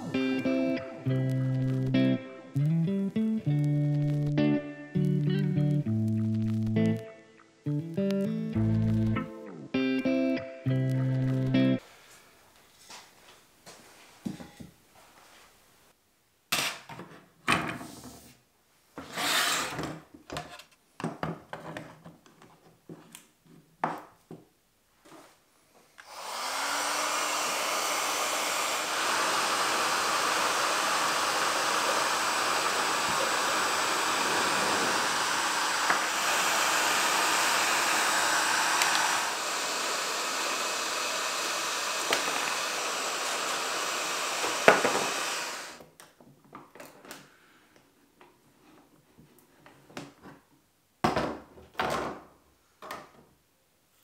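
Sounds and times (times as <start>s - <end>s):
heat gun blowing: 26.0s - 45.8s.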